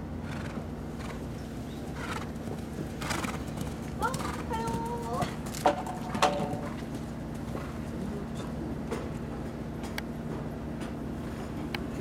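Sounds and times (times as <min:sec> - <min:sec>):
steady low hum: 0:00.0 - 0:12.0
horse hoofbeats on sand: 0:00.4 - 0:09.4.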